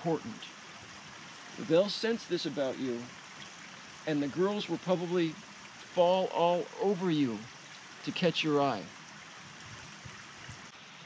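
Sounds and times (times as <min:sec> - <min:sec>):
stream trickling: 0:00.0 - 0:11.0.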